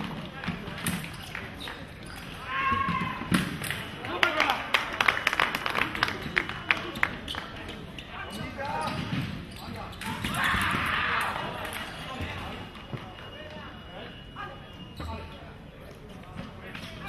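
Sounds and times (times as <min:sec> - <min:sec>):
voices shouting or cheering: 0:02.4 - 0:03.3, 0:10.2 - 0:11.7.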